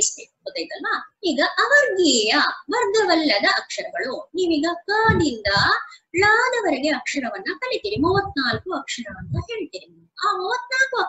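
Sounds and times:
woman speaking drawn-out syllables: 4.9 - 6.3, 7.5 - 9.8.

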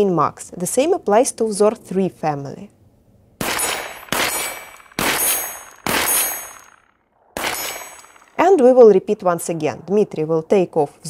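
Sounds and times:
shotgun shots: 3.4 - 8.7
high metallic ring: 3.6 - 6.9.

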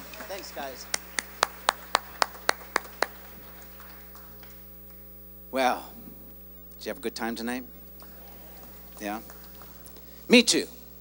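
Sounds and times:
person clapping: 0.0 - 5.0.

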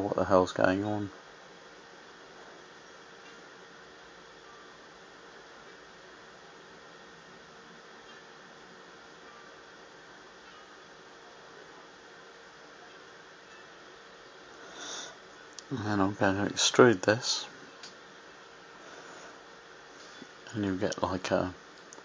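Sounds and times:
faint noise floor hiss: 0.0 - 22.0
faint steady hum: 0.0 - 22.0.

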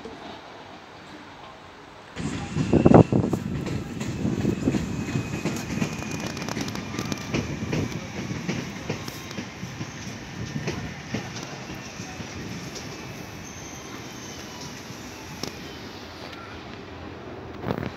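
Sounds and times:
electric train rumble: 0.6 - 17.9.

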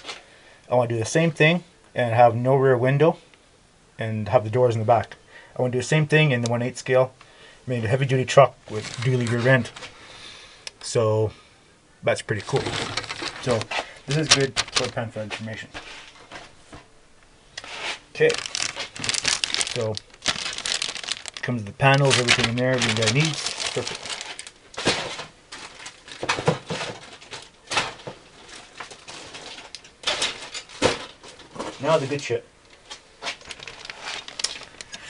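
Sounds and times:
plastic bag crinkling: 8.7 - 9.9, 12.3 - 15.2, 18.1 - 32.0, 32.8 - 35.0.

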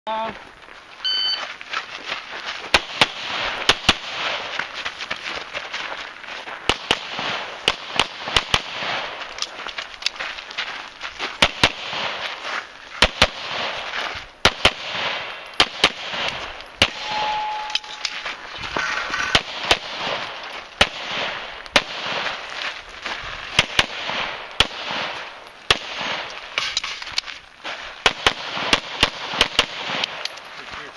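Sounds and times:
pistol shots: 2.7 - 4.5, 6.7 - 9.2, 11.4 - 12.3, 13.0 - 18.2, 19.2 - 22.4, 23.5 - 26.9, 27.7 - 30.4.

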